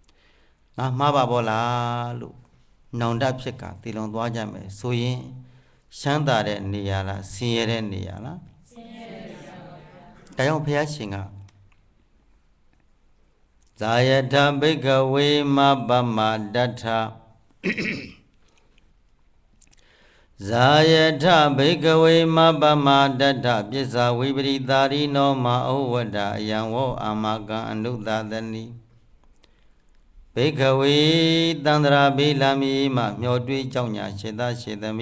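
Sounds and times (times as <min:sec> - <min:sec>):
man chanting: 0:00.8 - 0:08.5, 0:13.8 - 0:17.4, 0:20.4 - 0:28.9, 0:30.3 - 0:35.0.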